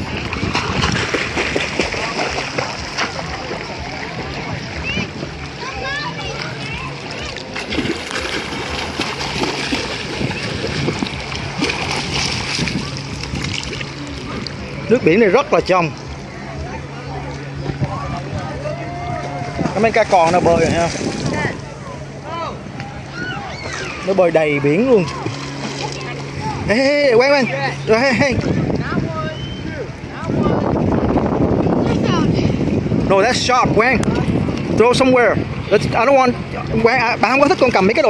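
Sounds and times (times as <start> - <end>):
sea water sloshing and splashing: 0.0 - 21.9, 23.0 - 29.2
swimmers splashing: 0.0 - 30.3
distant voices: 0.0 - 38.0
steady low hum: 0.0 - 38.0.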